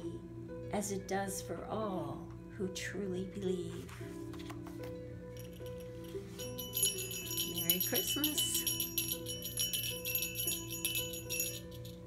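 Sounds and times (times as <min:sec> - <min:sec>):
soft instrumental music: 0:00.0 - 0:12.0
jingle bell shaken: 0:05.4 - 0:12.0.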